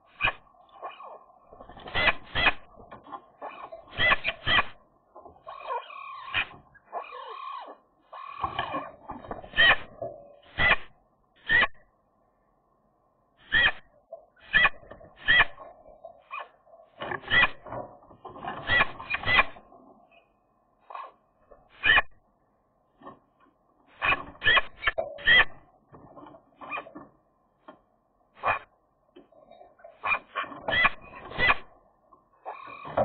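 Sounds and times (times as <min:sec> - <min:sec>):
soft bird warbling: 0:00.0 - 0:02.7, 0:03.4 - 0:04.8, 0:05.4 - 0:08.9, 0:13.4 - 0:16.6, 0:32.4 - 0:33.0.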